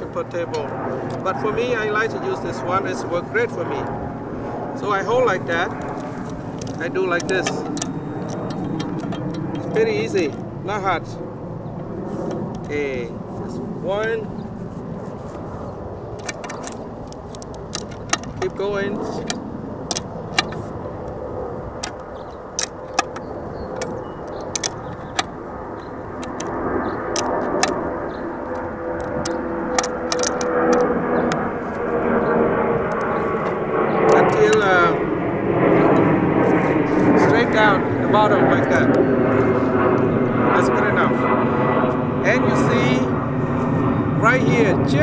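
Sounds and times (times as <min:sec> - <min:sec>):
engine drone: 0:00.0 - 0:45.0.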